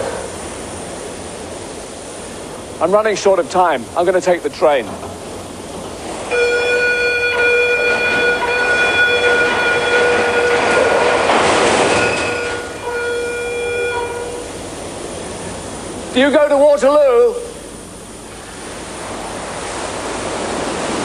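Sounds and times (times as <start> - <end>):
train rushing past: 0.0 - 21.0
train horn blast: 6.3 - 14.6.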